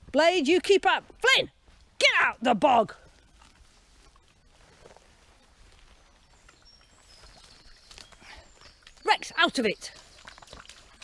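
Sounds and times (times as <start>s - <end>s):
dogs moving through wet grass: 2.7s - 11.0s
high bird chirps: 6.3s - 10.9s.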